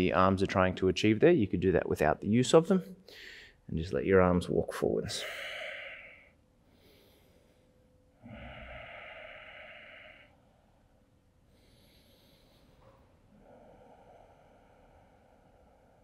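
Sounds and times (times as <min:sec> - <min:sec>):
man breathing: 0:03.0 - 0:03.7, 0:05.0 - 0:16.0.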